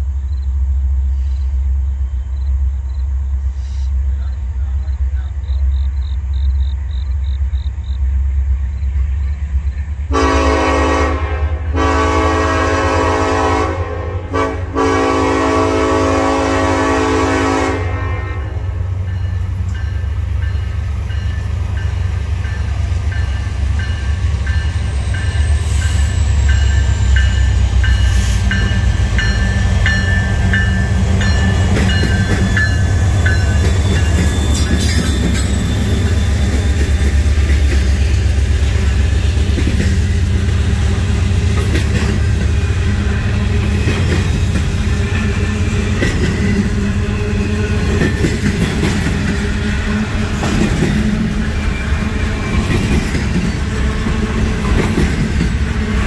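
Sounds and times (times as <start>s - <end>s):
diesel locomotive engine rumbling: 0.0s - 56.0s
train cars rolling on rails: 0.0s - 56.0s
locomotive air horn blasts: 10.1s - 18.8s
wheel squeal: 33.7s - 36.8s.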